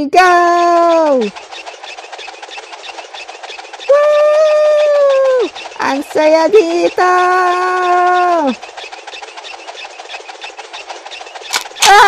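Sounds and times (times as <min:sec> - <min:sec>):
merry-go-round clicking rattle: 0:00.1 - 0:12.0
sharp crack: 0:11.4 - 0:12.0.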